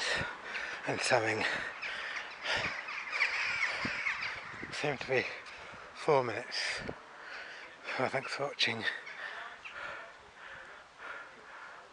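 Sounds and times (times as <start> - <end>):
crows cawing: 0.0 - 4.6.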